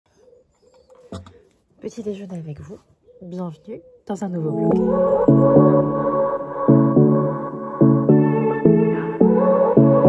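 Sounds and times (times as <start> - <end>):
dove cooing: 0.1 - 1.6, 3.0 - 5.1
brief louder sound: 4.7 - 8.0.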